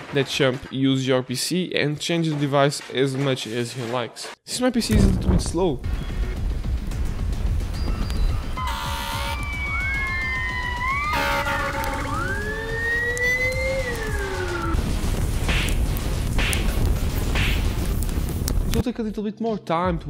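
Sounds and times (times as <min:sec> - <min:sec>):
emergency vehicle siren wailing: 0:08.6 - 0:14.8
low rumble: 0:11.9 - 0:18.8.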